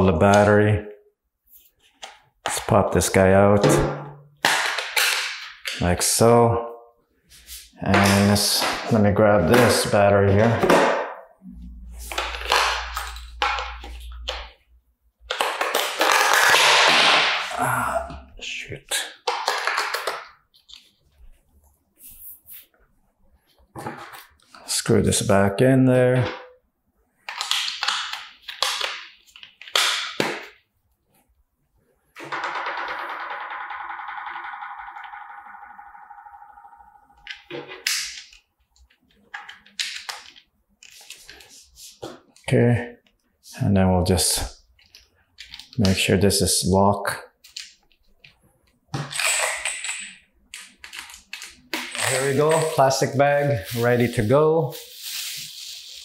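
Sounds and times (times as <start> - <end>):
plastic rustling and scraping: 50.8 - 56.0.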